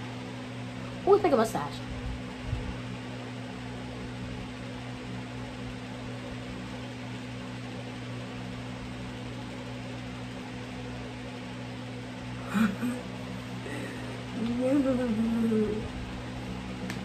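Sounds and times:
steady low hum with hiss: 0:00.0 - 0:17.0.

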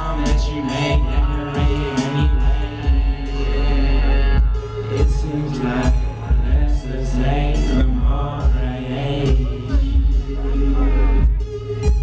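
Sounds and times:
heavy bass beat: 0:00.0 - 0:12.0
rapping over a beat: 0:00.0 - 0:12.0.

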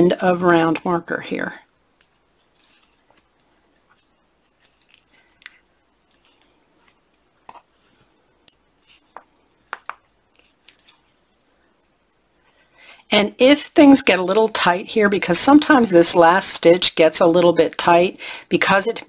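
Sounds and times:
knitting needles clicking: 0:02.0 - 0:07.6.

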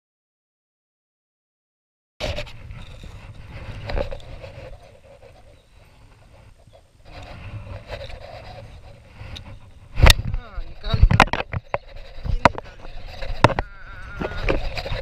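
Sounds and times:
wind rumble on microphone: 0:02.2 - 0:15.0.

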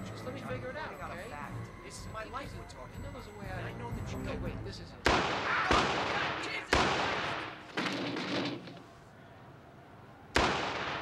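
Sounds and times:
loud bangs with echo: 0:05.0 - 0:08.7, 0:10.4 - 0:11.0.

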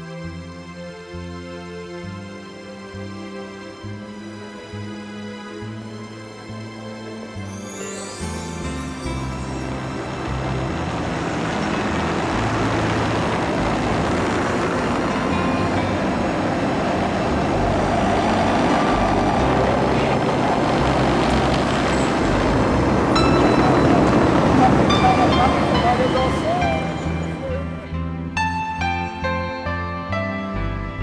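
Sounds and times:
soft background music: 0:00.0 - 0:31.0
car traffic: 0:09.0 - 0:28.3.

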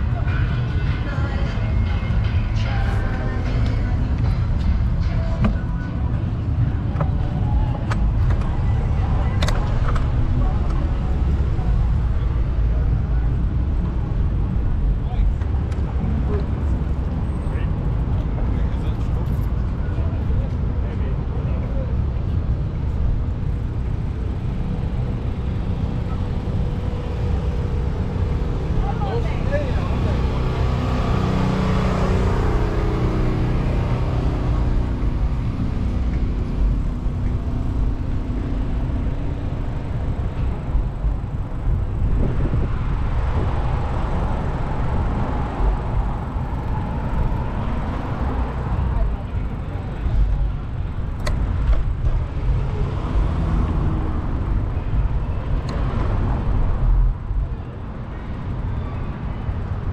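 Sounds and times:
city street traffic: 0:00.0 - 0:59.9
vehicle passing: 0:25.0 - 0:59.9
wind rumble on microphone: 0:30.2 - 0:59.9.

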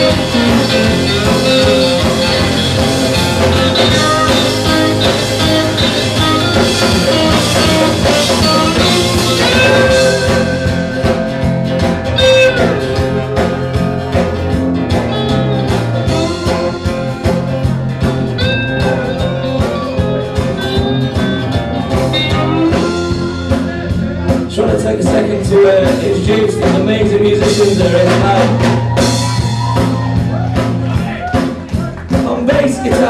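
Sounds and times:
lap steel slide guitar: 0:00.0 - 0:24.3
bass: 0:00.0 - 0:33.0
drum kit: 0:00.0 - 0:33.0.

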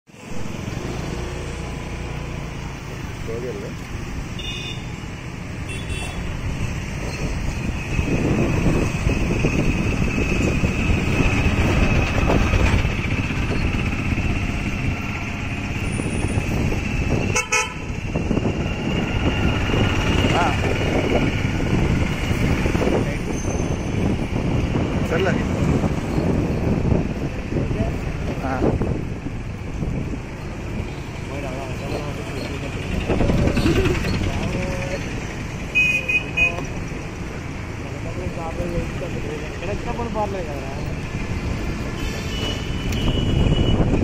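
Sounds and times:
rumble of motorcycles and vehicles: 0:00.1 - 0:44.0.

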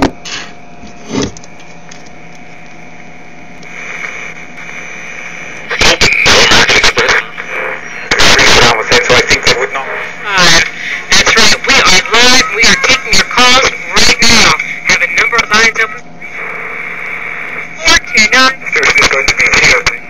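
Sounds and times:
garbled radio station sound: 0:03.6 - 0:20.0
radio tuning squeals: 0:03.6 - 0:20.0
faint radio static with whistle: 0:03.7 - 0:20.0.

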